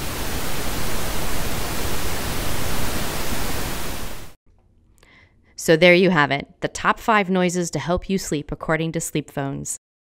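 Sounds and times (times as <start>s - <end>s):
pink noise hiss: 0.0s - 4.4s.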